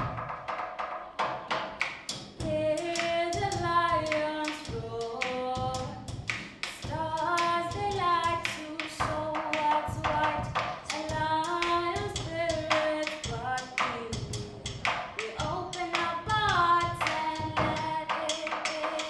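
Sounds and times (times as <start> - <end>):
percussive beat: 0.0 - 19.0
teenagers singing: 2.4 - 19.0.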